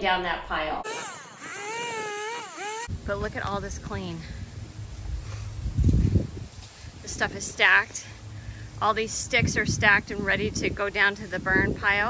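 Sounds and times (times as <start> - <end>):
chainsaw cutting branches: 0.8 - 3.1.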